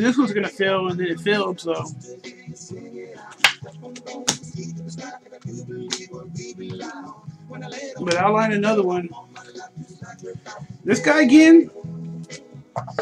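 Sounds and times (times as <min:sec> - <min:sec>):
quiet background music: 0:00.0 - 0:13.0.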